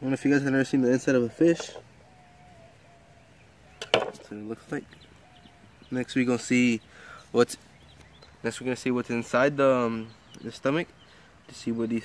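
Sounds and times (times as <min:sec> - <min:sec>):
sharp knocks: 0:03.8 - 0:04.2.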